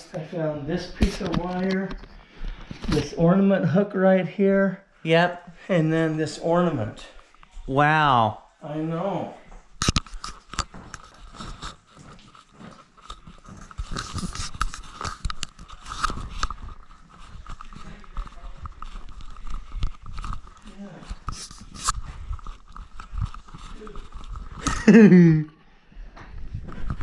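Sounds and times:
camera being handled: 9.8 - 24.8.

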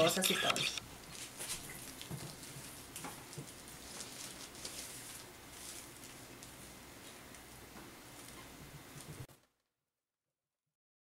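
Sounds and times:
ribbon rustling and crinkling: 1.0 - 9.6.

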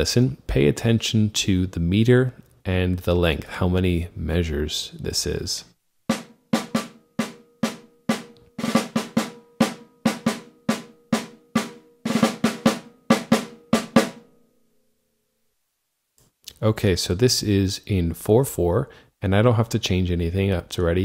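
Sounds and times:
snare drum: 6.1 - 14.2.

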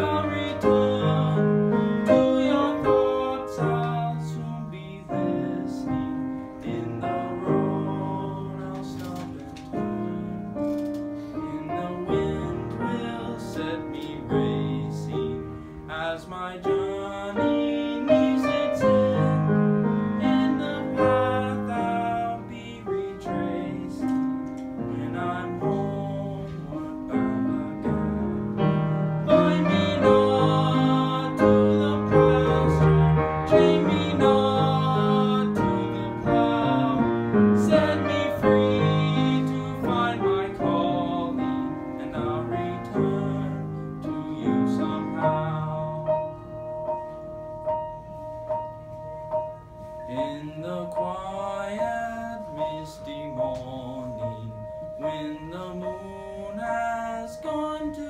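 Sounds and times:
piano playing: 0.0 - 58.0.

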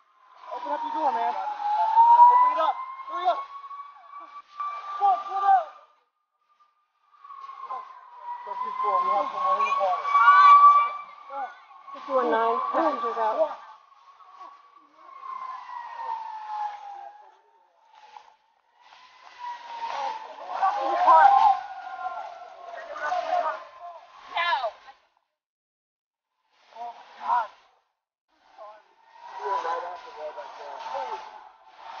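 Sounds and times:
high tone falling in pitch: 0.4 - 5.7, 7.2 - 18.4
muffled voices calling out: 7.2 - 17.6, 19.4 - 24.9.

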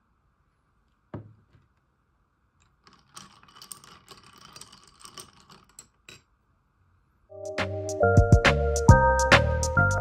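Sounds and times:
spoon stirring iced coffee: 2.8 - 5.9.

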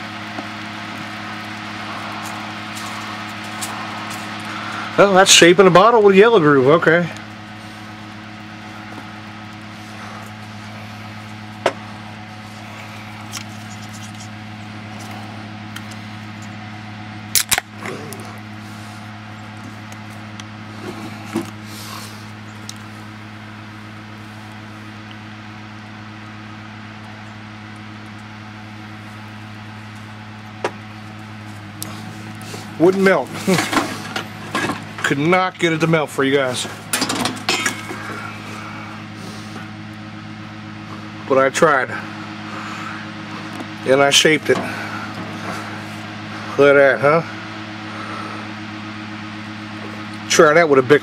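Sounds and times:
low machine hum: 0.0 - 51.0.

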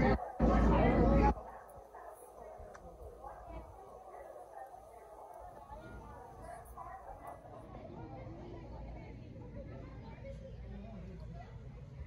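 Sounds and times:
low steady hum: 0.0 - 11.1
faint background chatter: 0.0 - 12.0.

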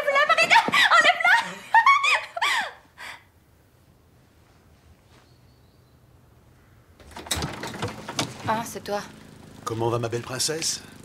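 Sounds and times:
front door unlatched and opened: 7.0 - 8.8
sharp clicks and rattles: 7.0 - 11.0.

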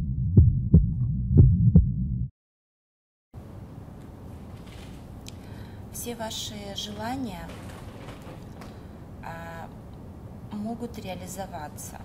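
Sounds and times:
heartbeat thumps: 0.0 - 2.3.

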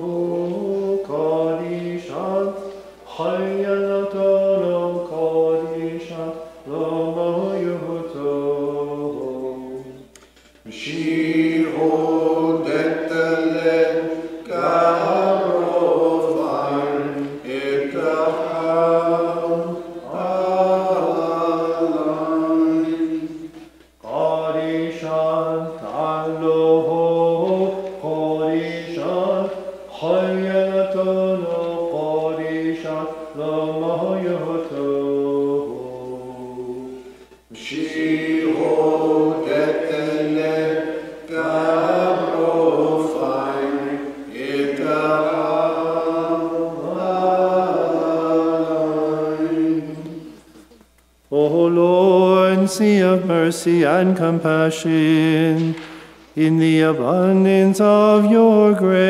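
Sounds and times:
single voice singing: 0.0 - 59.0
unaccompanied liturgical chant: 0.0 - 59.0.

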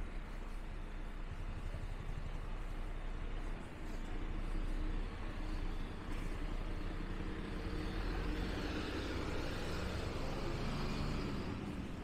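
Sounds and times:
bus engine rumbling: 0.0 - 12.0.

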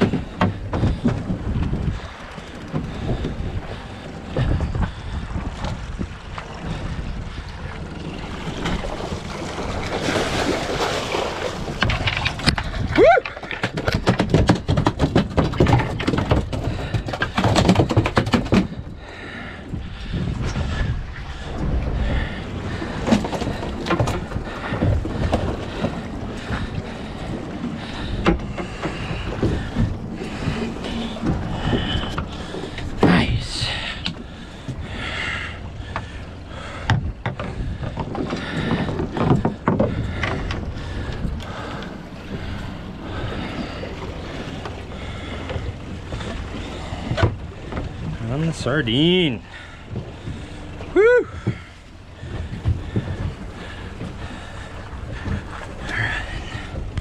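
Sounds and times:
water lapping at boat hull: 0.0 - 57.0
wind buffeting microphone: 0.0 - 57.0
fish splashing: 8.4 - 15.5
knocks and clatter: 11.8 - 18.8, 36.9 - 40.7.

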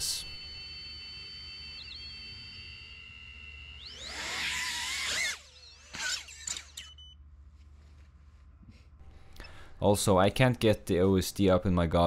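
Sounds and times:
drone motors whining: 0.0 - 7.2
throttle blips with pitch glides: 0.0 - 7.2.

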